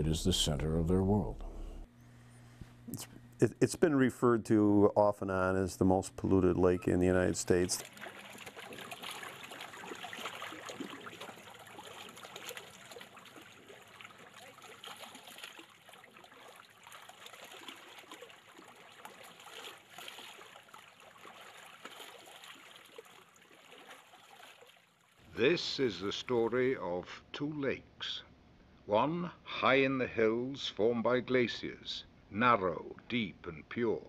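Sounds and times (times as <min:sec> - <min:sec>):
trickling water: 0:06.4 - 0:25.3.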